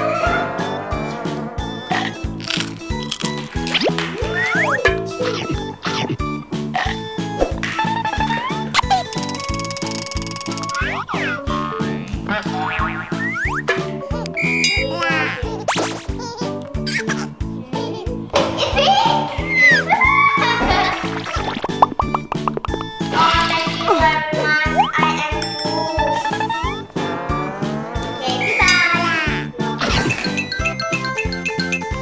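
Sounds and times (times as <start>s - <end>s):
bouncy children's music: 0.0s - 32.0s
high whistle-like tone: 14.4s - 14.7s.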